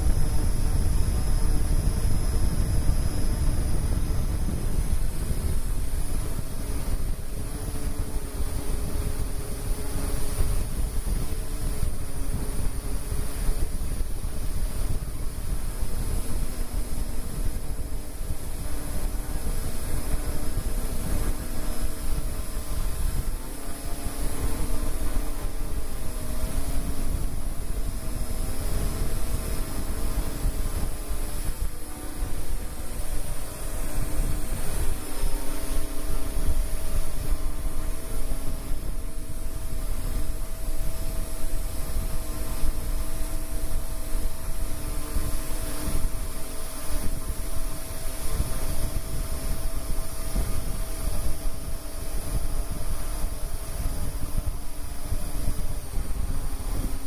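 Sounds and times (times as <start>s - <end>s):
drone rotors whirring: 0.0s - 57.0s
wind rumble on microphone: 0.0s - 57.0s.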